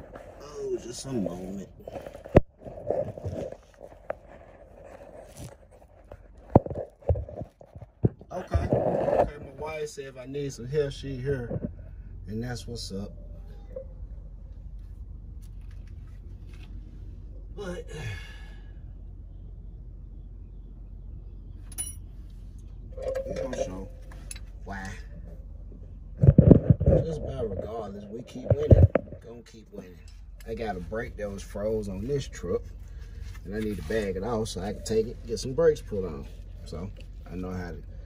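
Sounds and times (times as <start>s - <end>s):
faint rustle: 0.0s - 9.8s, 22.2s - 38.0s
steady low rumble: 0.0s - 38.0s.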